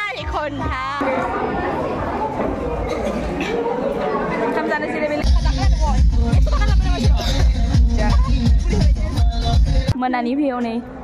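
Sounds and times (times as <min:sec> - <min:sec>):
chatter of voices: 0:00.0 - 0:10.8
electronic music with bass beat: 0:05.2 - 0:10.0.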